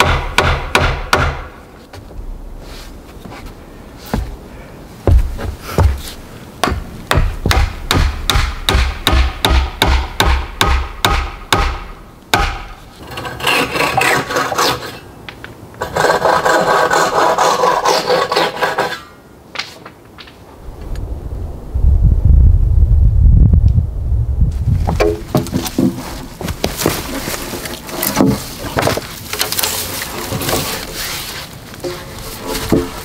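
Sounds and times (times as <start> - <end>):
scraping and rasping on wood: 12.9 - 15.0, 15.8 - 19.1, 25.0 - 33.0
deep rumble: 20.6 - 25.0.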